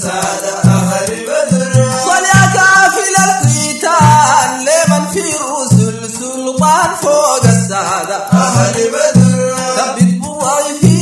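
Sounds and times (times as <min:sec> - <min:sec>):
heavy low drum beats: 0:00.0 - 0:11.0
men chanting praise song: 0:00.0 - 0:11.0.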